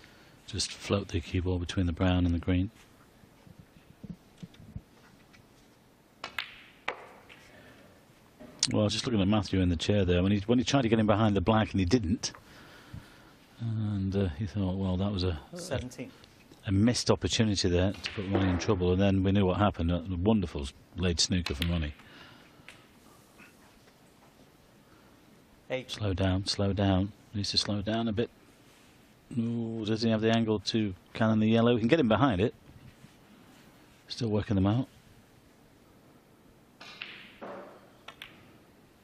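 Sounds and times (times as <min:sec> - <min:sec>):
snooker cue and balls clicking: 0:03.5 - 0:07.6, 0:36.8 - 0:38.8.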